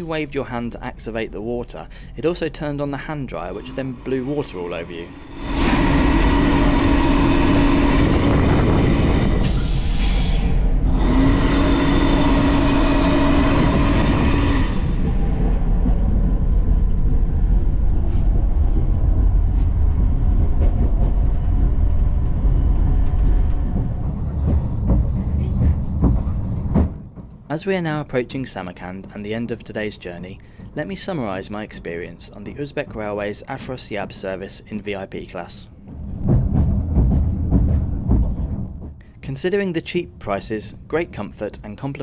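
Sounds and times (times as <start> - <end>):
train running rumble: 0.0 - 42.0
hand dryer blowing: 5.1 - 15.5.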